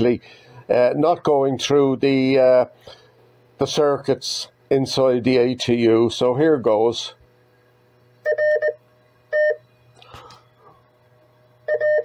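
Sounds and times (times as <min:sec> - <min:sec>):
morse sidetone beeps: 0:11.7 - 0:12.0.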